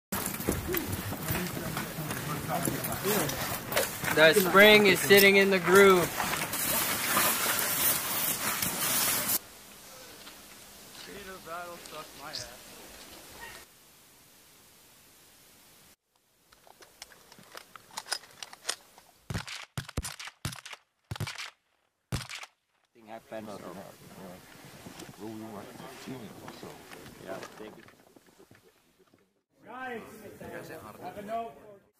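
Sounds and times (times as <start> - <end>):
snow crunching underfoot: 0.2 - 9.4
people talking: 0.7 - 6.1, 11.0 - 12.6, 23.0 - 24.4, 25.2 - 27.9, 29.6 - 31.9.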